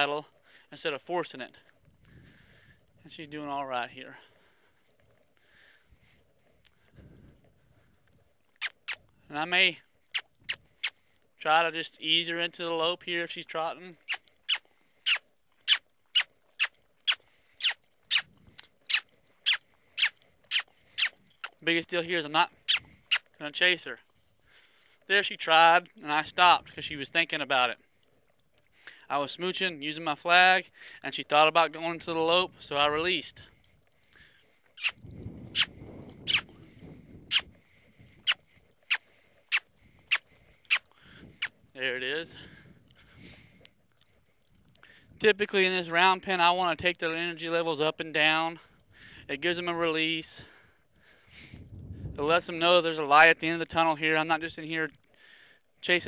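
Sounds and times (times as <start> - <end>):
lip smooching squeaks: 8.5 - 9.1, 10.1 - 11.0, 14.0 - 21.7, 22.5 - 23.4, 34.6 - 36.6, 37.2 - 41.7
person making kissing sounds: 8.6 - 9.0, 14.1 - 18.3, 18.9 - 21.1, 34.8 - 35.0, 36.3 - 36.5.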